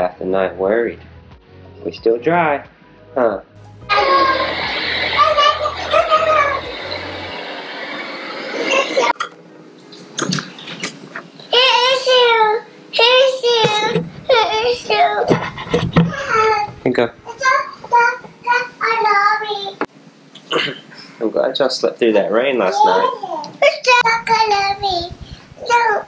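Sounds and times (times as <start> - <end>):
steady hiss: 3.6 - 26.0
toddler babbling and calling out: 11.5 - 15.3, 16.1 - 19.8, 22.7 - 26.0.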